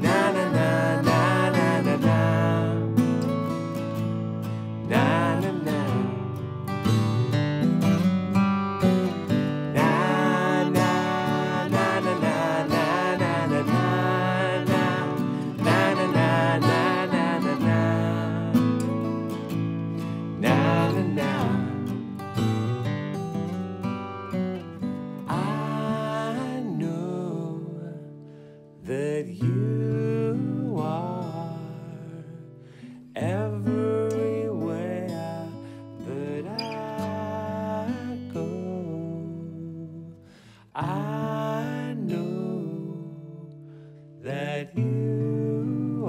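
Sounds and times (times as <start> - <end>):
acoustic guitars strumming: 0.0 - 46.0.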